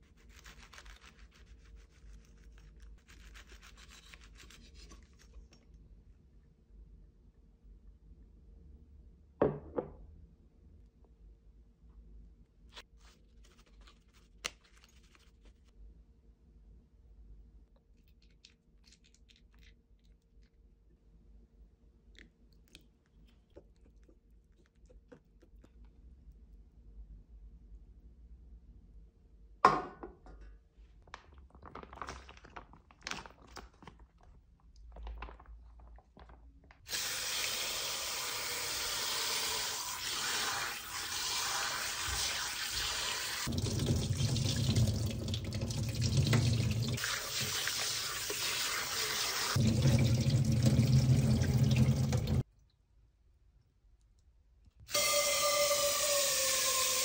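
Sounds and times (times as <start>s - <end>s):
hands rubbing octopus in water: 0.0s - 5.5s
tap water pouring into metal tray: 36.9s - 52.4s.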